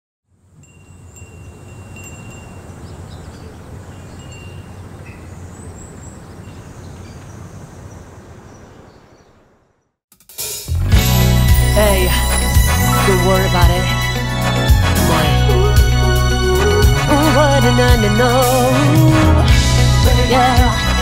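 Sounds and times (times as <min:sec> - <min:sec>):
wind chimes ringing: 0:00.5 - 0:06.6, 0:11.1 - 0:14.4.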